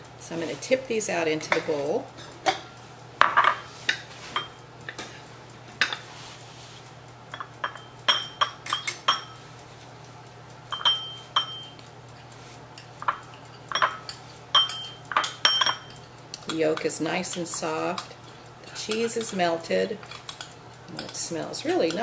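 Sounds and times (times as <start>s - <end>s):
glass cups clinking on ceramic bowl: 7.4s - 9.3s, 10.7s - 11.7s, 13.0s - 15.9s.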